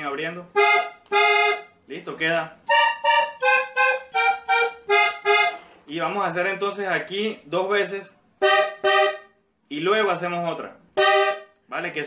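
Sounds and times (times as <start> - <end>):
button accordion notes: 0.5 - 1.9, 2.6 - 5.9, 8.4 - 9.4, 10.9 - 11.6.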